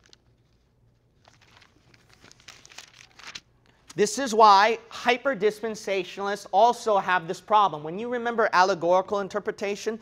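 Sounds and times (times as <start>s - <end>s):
thin pages rustling: 0.0s - 3.8s.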